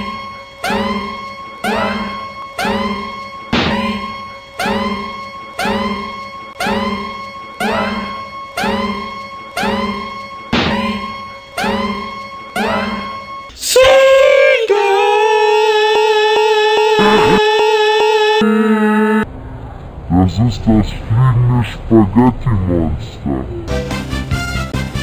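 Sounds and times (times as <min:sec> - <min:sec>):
looped plucked guitar-like note: 0:17.0 - 0:17.4.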